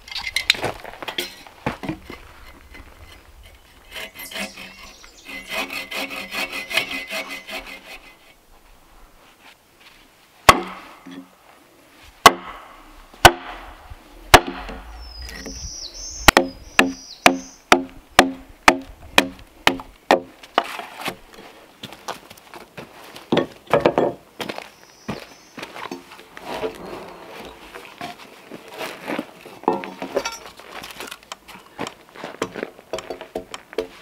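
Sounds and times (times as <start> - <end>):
bow saw cutting log: 3.4 - 8.4
axe chopping log: 10.5 - 11.0, 12.2 - 14.8, 16.3 - 21.2.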